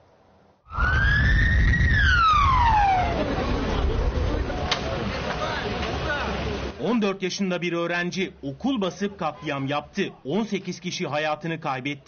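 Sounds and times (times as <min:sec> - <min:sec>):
siren wailing: 0:00.7 - 0:04.0
steady low rumble: 0:00.7 - 0:05.1.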